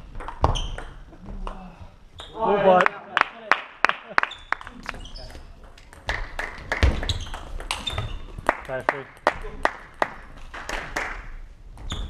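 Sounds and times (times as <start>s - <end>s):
table tennis ball hits: 5.6s - 10.1s.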